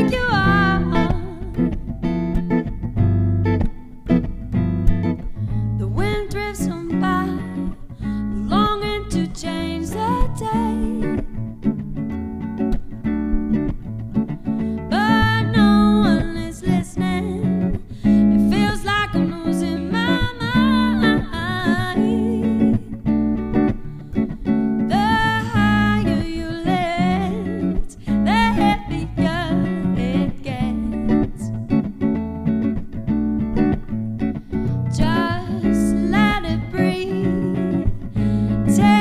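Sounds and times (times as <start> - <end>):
woman singing: 0.0 - 1.9, 5.5 - 11.4, 14.8 - 31.8, 34.7 - 39.0
plucked guitars and bass: 0.0 - 39.0.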